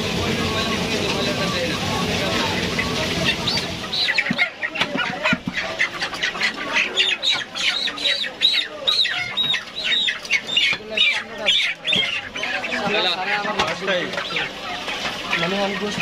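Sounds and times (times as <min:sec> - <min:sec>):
chickens squawking: 0:00.0 - 0:16.0.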